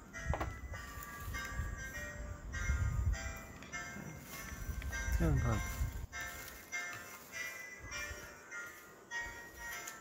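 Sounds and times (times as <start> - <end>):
tinny electronic melody: 0.0 - 10.0.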